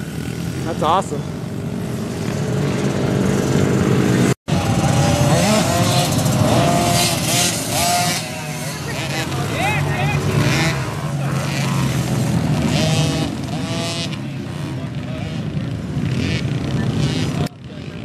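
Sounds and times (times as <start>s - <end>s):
dirt bike engines revving: 0.0s - 18.0s.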